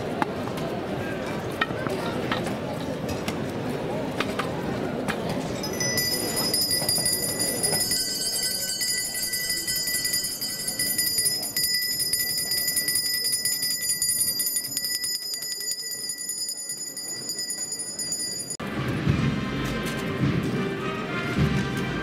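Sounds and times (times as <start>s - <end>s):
handbell ringing rapidly: 5.6s - 18.6s.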